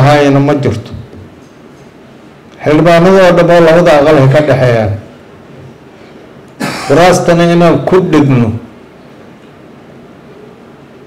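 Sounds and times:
man talking into a microphone: 0.0s - 1.1s, 2.6s - 5.1s, 6.9s - 8.7s
man coughing: 6.6s - 7.0s.

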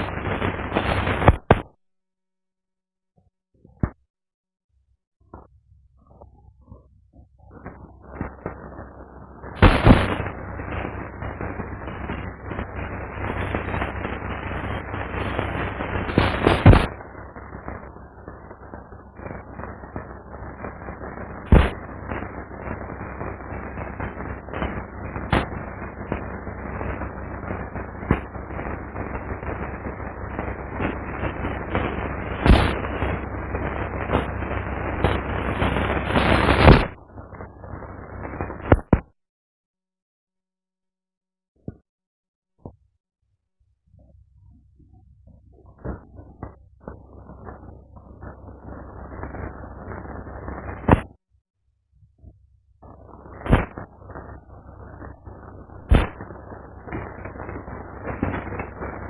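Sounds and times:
dense continuous crackling: 0.0s - 1.7s, 5.2s - 39.2s, 43.9s - 51.2s, 52.2s - 59.0s
sharp loud pops: 0.0s - 1.8s, 3.7s - 4.0s, 9.6s - 10.3s, 16.1s - 17.0s, 21.5s - 21.8s, 25.3s - 25.6s, 28.0s - 28.3s, 31.7s - 33.0s, 35.0s - 37.0s, 38.6s - 39.2s, 50.9s - 51.2s, 53.4s - 53.9s, 55.9s - 56.3s.

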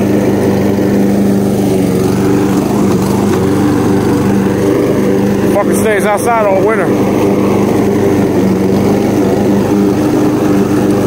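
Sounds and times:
lawn mower engine running: 0.0s - 11.0s.

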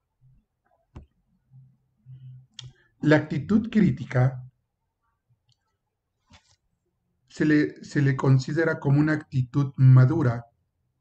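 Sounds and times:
person speaking: 2.6s - 4.6s.

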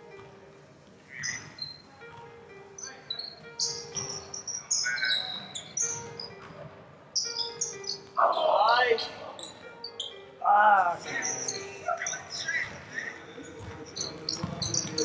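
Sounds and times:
sneakers squeaking on hardwood floor: 1.0s - 6.6s, 7.2s - 10.4s, 11.0s - 15.0s.

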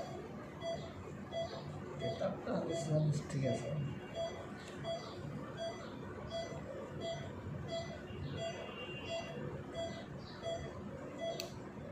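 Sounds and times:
patient monitor beeping: 0.0s - 11.6s.

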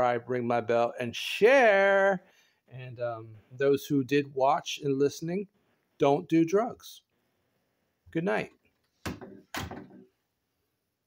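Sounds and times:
door shutting thuds: 9.0s - 10.0s.

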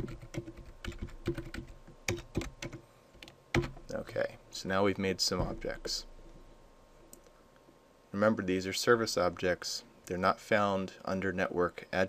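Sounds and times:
typing on computer keyboard: 0.0s - 3.8s.

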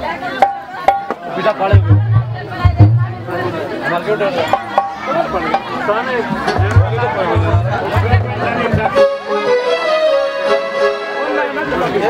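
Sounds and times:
people talking at once: 0.0s - 12.0s
music: 0.4s - 3.5s, 4.5s - 5.7s, 6.3s - 12.0s
low thumps: 1.8s - 3.5s, 6.3s - 9.0s.

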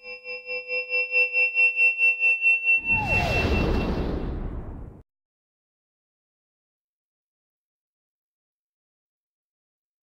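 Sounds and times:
deep falling whoosh: 2.8s - 5.0s.

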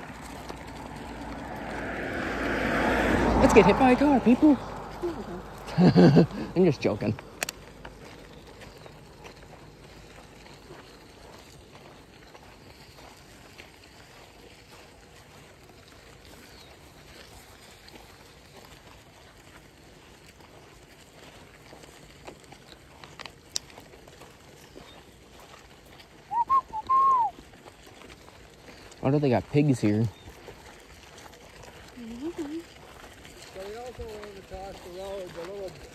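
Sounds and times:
loud whistled notes: 26.3s - 27.3s.

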